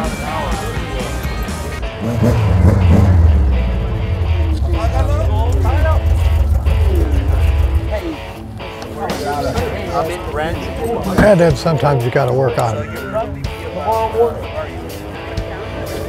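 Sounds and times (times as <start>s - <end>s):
background music: 0.0s - 16.0s
people talking: 0.0s - 16.0s
loud low rumble: 2.0s - 8.5s.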